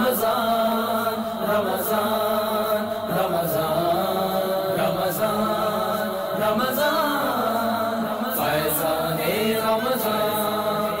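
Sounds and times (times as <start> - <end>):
voices chanting devotional song: 0.0 - 11.0.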